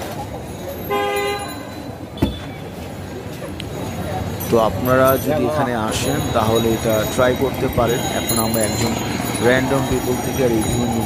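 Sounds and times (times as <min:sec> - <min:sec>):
street noise: 0:00.0 - 0:11.0
vehicle horn toot: 0:00.9 - 0:02.6.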